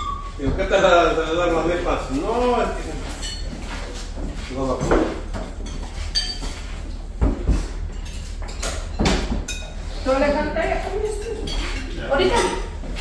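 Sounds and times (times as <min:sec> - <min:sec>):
people talking: 0:00.4 - 0:03.3, 0:04.5 - 0:05.1, 0:10.0 - 0:12.8
plates and cutlery clinking: 0:01.5 - 0:13.0.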